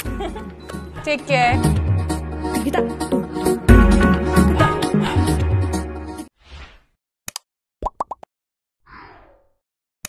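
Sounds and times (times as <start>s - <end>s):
background music: 0.0s - 6.3s.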